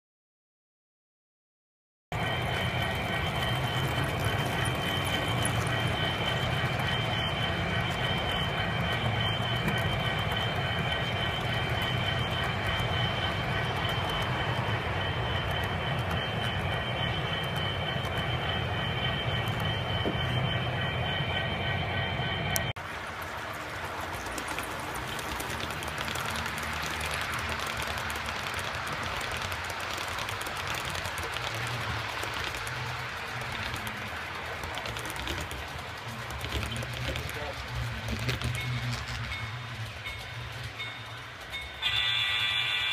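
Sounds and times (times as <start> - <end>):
model train wheels rumbling on rail: 2.2 - 42.9.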